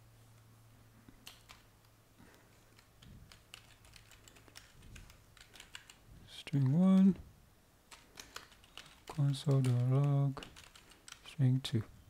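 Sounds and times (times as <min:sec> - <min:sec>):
keyboard typing: 0:01.2 - 0:01.7, 0:02.7 - 0:07.2, 0:07.9 - 0:11.4.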